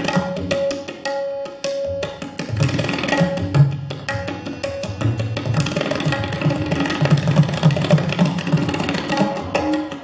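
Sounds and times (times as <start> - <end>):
tabla drumming: 0.0 - 10.0.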